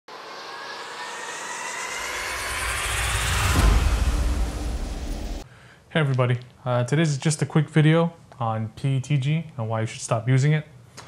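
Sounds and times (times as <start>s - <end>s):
rising whoosh: 0.0s - 5.4s
deep rumble: 0.1s - 5.4s.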